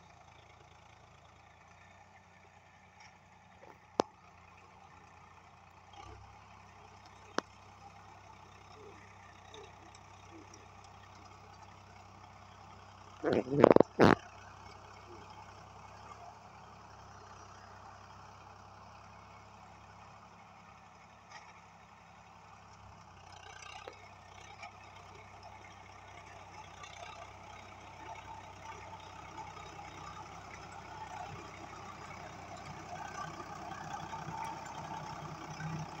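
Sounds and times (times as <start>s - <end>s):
tractor diesel engine running: 0.0s - 36.0s.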